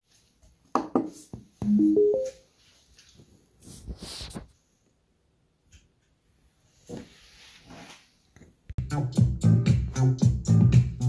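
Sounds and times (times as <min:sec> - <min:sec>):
electronic start-up chime: 0:01.7 - 0:02.4.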